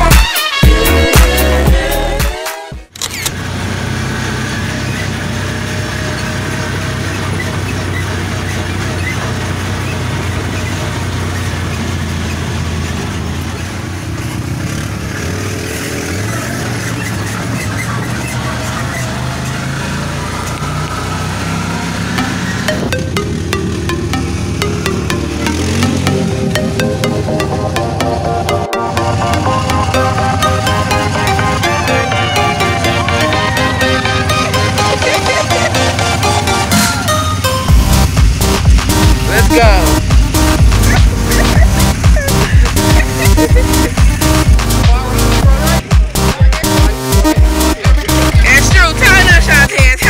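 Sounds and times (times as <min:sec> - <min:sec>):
buggy engine running: 0:00.0 - 0:02.2, 0:02.9 - 0:50.0
music with a steady beat: 0:00.0 - 0:02.9, 0:37.7 - 0:50.0.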